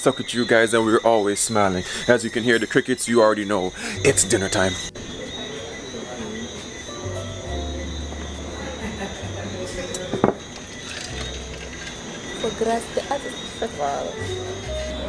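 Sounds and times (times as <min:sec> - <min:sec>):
faint voices: 0:00.0 - 0:11.2
crickets chirping: 0:00.0 - 0:15.0
music with deep bass: 0:06.4 - 0:10.1, 0:14.2 - 0:15.0.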